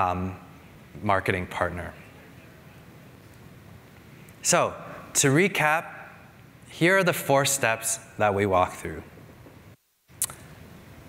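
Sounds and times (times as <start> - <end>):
sharp high click: 10.2 - 10.5.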